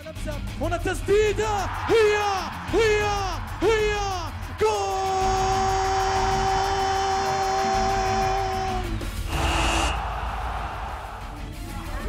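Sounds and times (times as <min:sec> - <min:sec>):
commentator shouting: 0:00.7 - 0:09.0
crowd noise: 0:09.2 - 0:12.0
whooshing transition: 0:09.3 - 0:11.6.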